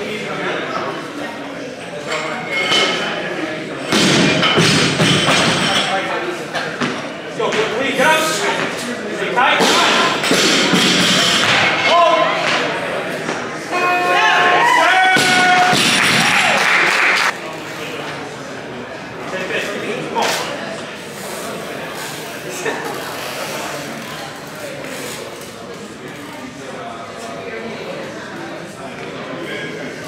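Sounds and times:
loud shouting voices: 0:13.7 - 0:17.2
people cheering: 0:13.7 - 0:17.4
people clapping: 0:15.2 - 0:17.4.

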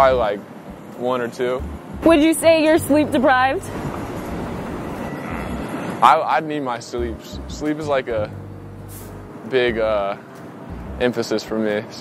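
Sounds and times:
trolley rolling on tracks: 0:03.0 - 0:06.0
faint high tone: 0:05.0 - 0:05.8.

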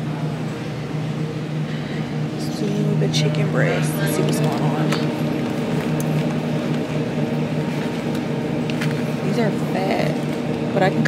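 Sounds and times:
electrical hum of display case: 0:00.0 - 0:11.0.

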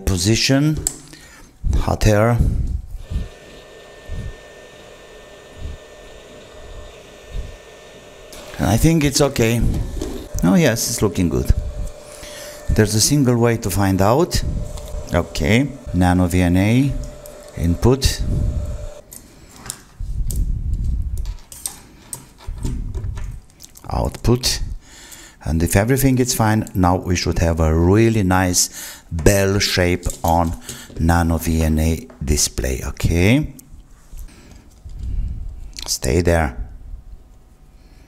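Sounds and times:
hot air station blowing: 0:03.0 - 0:19.0.

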